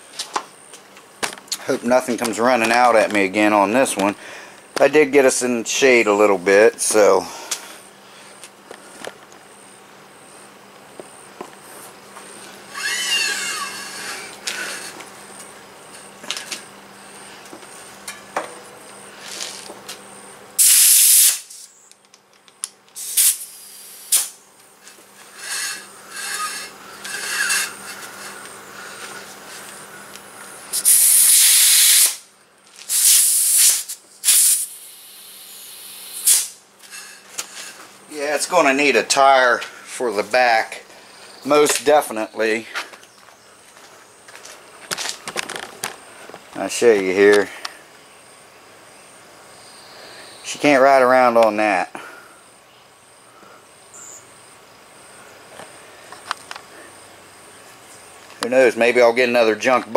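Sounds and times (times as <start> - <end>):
compressed air hissing: 20.6 - 21.7, 23.0 - 30.1, 30.7 - 37.8.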